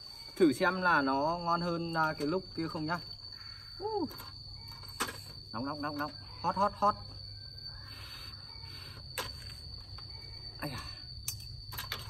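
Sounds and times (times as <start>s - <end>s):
cricket trilling: 0.0s - 12.0s.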